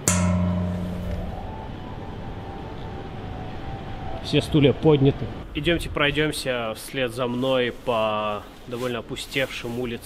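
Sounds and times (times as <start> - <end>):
metal plate struck and ringing: 0.0 - 3.2.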